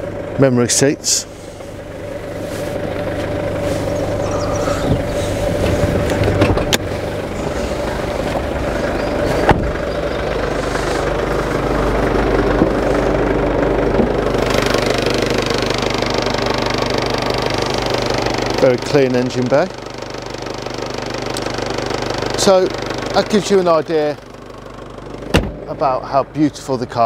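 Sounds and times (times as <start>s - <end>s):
car engine idling: 0.0s - 27.0s.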